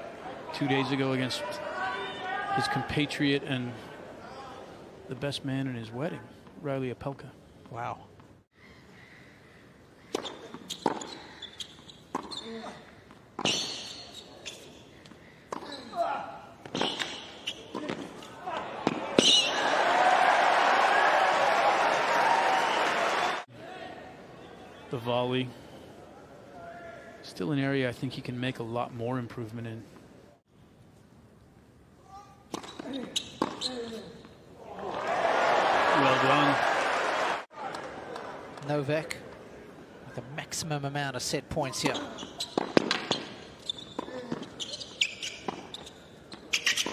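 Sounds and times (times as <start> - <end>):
crowd applause and cheering: 19.1 - 23.5, 34.7 - 38.5
ball bouncing on hard court: 41.9 - 43.3
tennis ball struck by rackets: 42.5 - 43.3.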